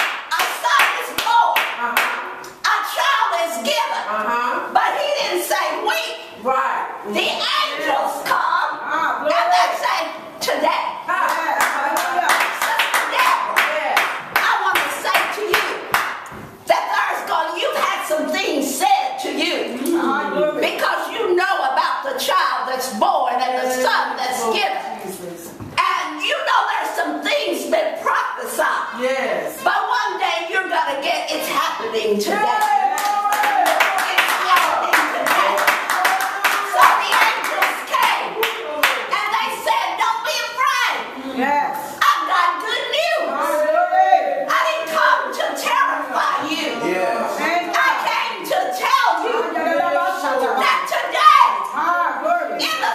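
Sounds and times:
hands clapping: 0.0 - 2.6, 11.3 - 16.4, 32.5 - 39.1
voices: 0.0 - 52.9
woman preaching loudly: 0.3 - 15.9, 25.8 - 38.4, 39.0 - 46.9, 47.6 - 52.9.

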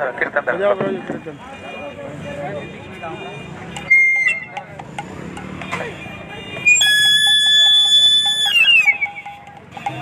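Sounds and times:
outdoor noise: 0.0 - 10.0.

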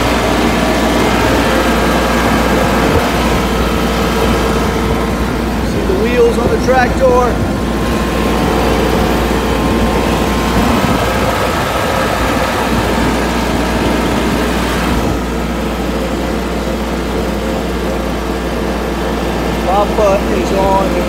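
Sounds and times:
tractor engine running: 0.0 - 21.0.

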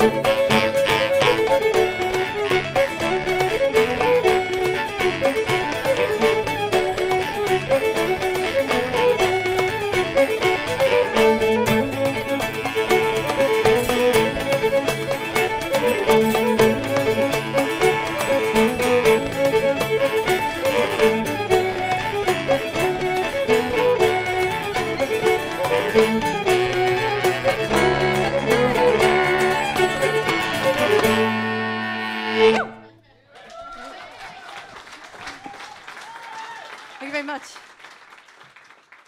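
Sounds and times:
fast folk band tune: 0.0 - 32.8.

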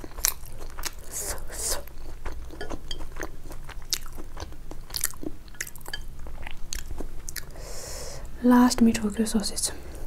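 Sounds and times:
chewing noodles: 0.0 - 7.6.

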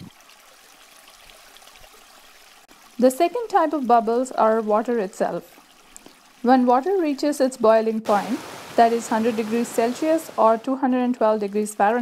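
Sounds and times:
trickling water: 0.0 - 12.0.

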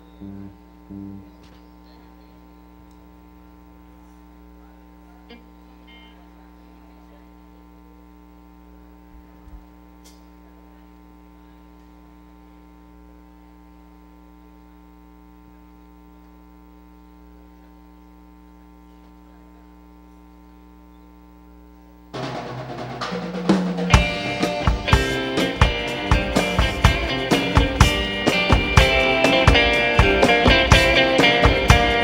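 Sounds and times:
electrical mains hum: 0.0 - 32.0
rock band with orchestra: 22.2 - 32.0.

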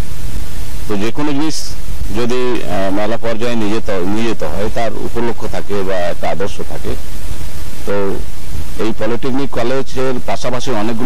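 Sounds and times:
loud low background noise: 0.0 - 11.0
man speaking into microphone: 0.9 - 7.0, 7.9 - 11.0.

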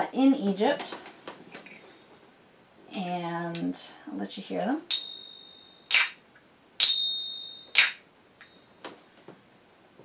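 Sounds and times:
finger cymbal ringing: 4.9 - 6.2, 6.8 - 8.7
finger cymbals clacking: 4.9 - 6.2, 6.8 - 8.6.

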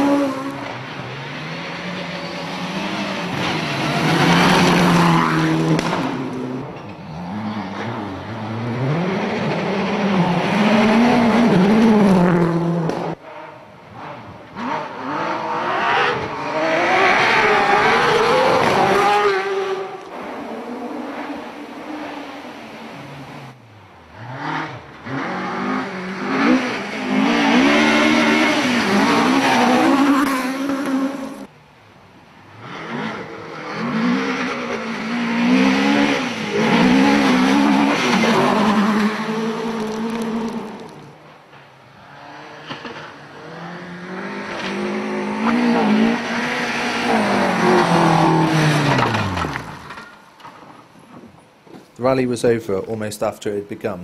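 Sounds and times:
rally car engines revving: 0.0 - 31.5, 32.4 - 51.8.

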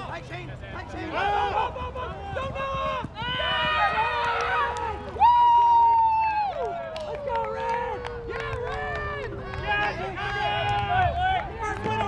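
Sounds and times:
people shouting and cheering: 0.8 - 12.0.

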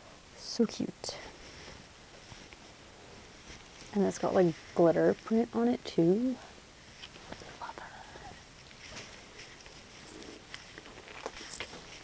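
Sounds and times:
t-shirt rustling: 1.2 - 5.2, 8.7 - 12.0
person whispering: 7.5 - 8.4.

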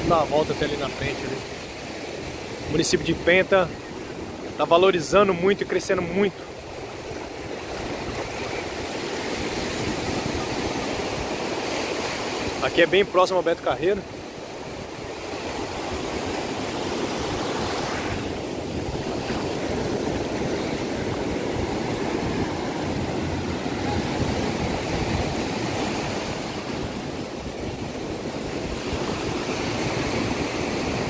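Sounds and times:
ocean surf breaking on beach: 0.0 - 31.0.

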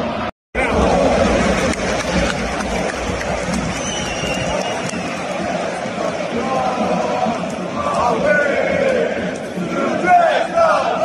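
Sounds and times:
stadium crowd shouting and chanting: 0.0 - 11.0.

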